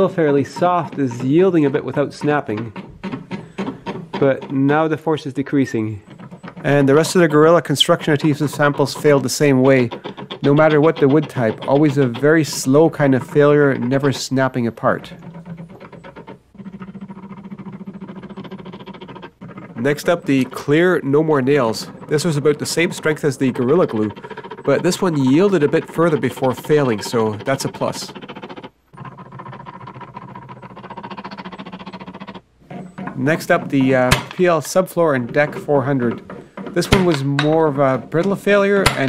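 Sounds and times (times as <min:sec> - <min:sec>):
motor gear train humming and ticking: 0:00.0 - 0:39.0
rapid even clicking: 0:00.0 - 0:39.0.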